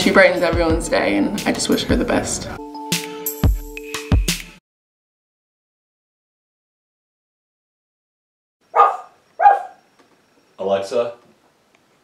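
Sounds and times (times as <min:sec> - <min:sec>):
dog barking: 0:08.7 - 0:09.8.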